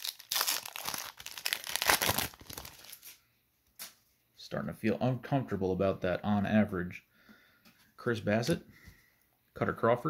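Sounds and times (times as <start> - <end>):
foil wrapper tearing and crinkling: 0.0 - 3.2.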